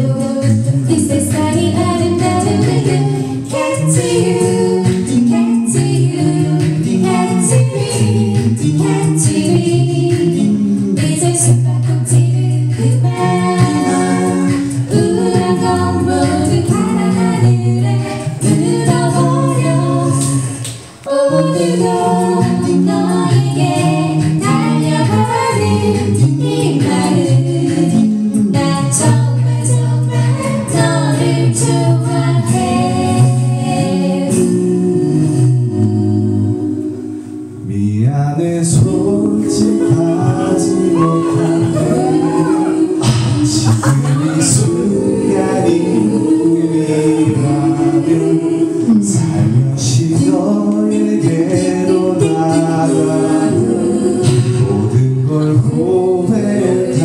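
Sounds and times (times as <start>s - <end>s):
a cappella group singing in harmony: 0.0s - 57.0s
held bass voice: 37.7s - 46.2s, 48.8s - 50.1s.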